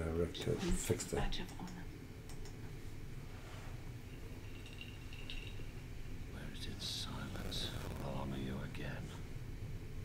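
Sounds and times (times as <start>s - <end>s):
low room hum: 0.0s - 10.0s
faint clicks: 1.4s - 2.6s.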